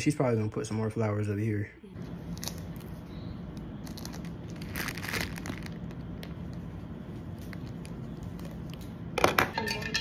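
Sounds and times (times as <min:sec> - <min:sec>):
plastic sachet crinkling: 0:02.2 - 0:09.0.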